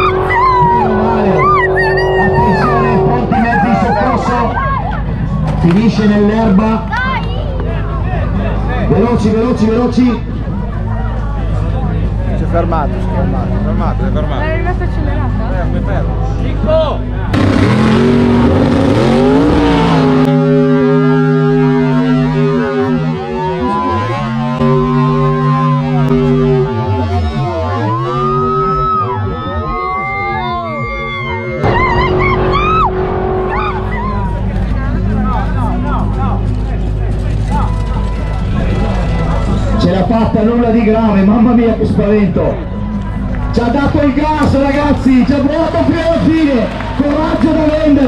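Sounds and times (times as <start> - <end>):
low tones bending in pitch: 0.0 - 48.0
racing car engines roaring: 0.0 - 48.0.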